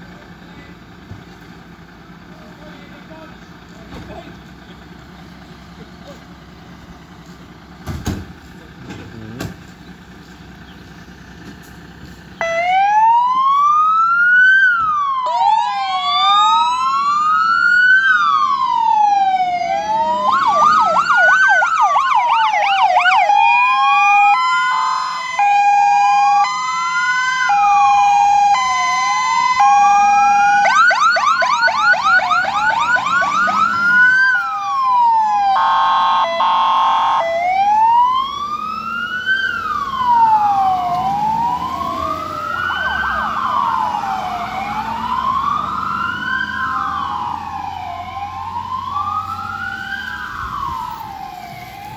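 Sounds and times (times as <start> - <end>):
fire engine rumble: 0.0 - 51.9
electronic siren wailing and yelping: 12.4 - 51.9.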